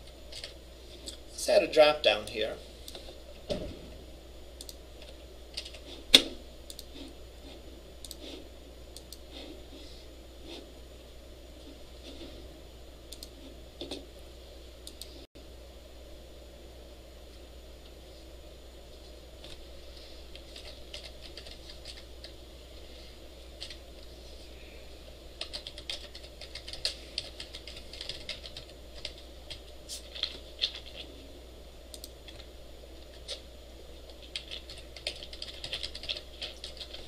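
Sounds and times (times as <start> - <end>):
low hum: 0.0 - 37.0.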